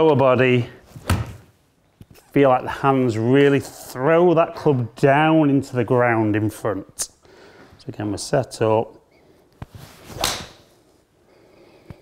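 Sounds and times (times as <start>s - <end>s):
golf club swish striking ball: 10.0s - 10.7s.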